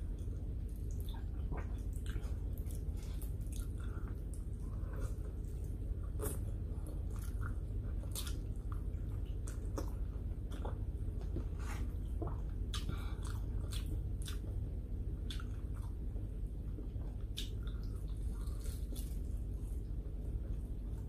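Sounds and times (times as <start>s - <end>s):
close-up chewing mouth sounds: 0.0s - 19.9s
steady low hum: 0.0s - 21.0s.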